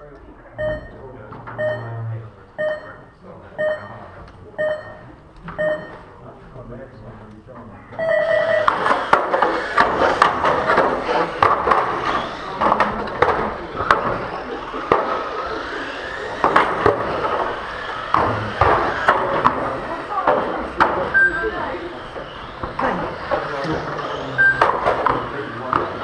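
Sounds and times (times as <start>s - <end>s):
short electronic beep: 0.6s - 1.0s, 1.6s - 4.0s, 4.6s - 6.0s, 8.0s - 8.7s, 24.4s - 24.7s
small electric cars racing: 8.0s - 26.0s.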